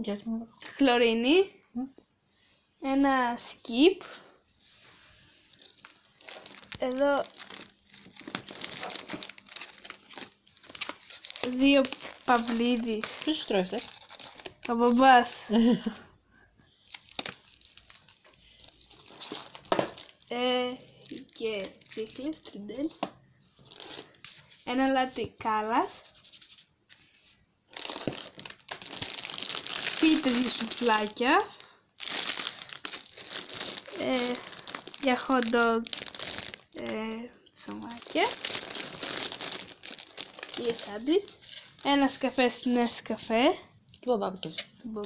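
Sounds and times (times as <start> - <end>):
plastic bags crinkling: 5.4 - 16.0, 16.8 - 25.8, 27.7 - 43.2.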